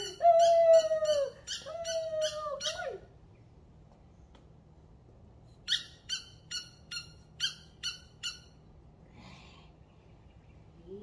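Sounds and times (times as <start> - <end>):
squeaky dog toy squeaking: 0.0 - 2.8, 5.6 - 8.6.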